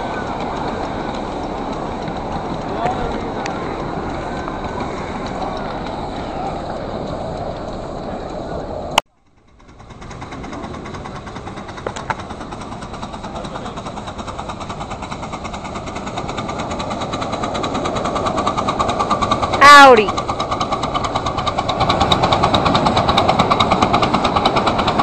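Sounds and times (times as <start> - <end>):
steam locomotive exhaust beat: 0.0 - 25.0.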